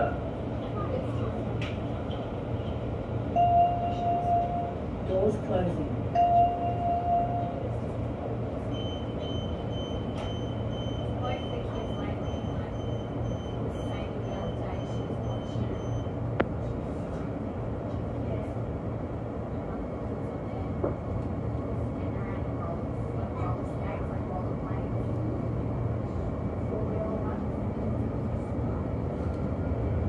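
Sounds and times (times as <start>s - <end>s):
train running hum: 0.0s - 30.0s.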